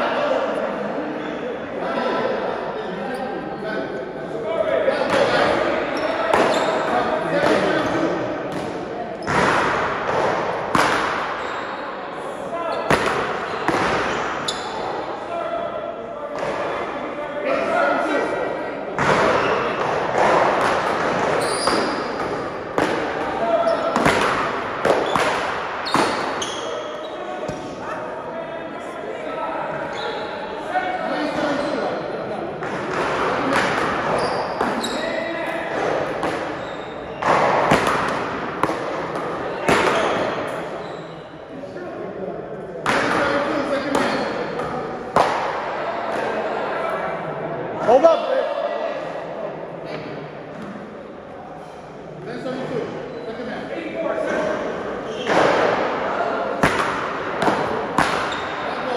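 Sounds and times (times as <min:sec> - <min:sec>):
balls smacking off paddles and walls: 0:05.0 - 0:11.6, 0:12.8 - 0:14.8, 0:19.0 - 0:26.7, 0:32.6 - 0:35.0, 0:35.7 - 0:40.7, 0:42.8 - 0:46.3, 0:55.2 - 0:58.9.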